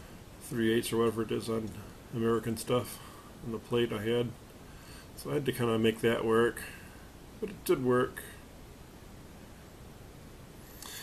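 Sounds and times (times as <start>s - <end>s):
faint steady hiss: 0.0s - 11.0s
soft rush of noise: 0.0s - 11.0s.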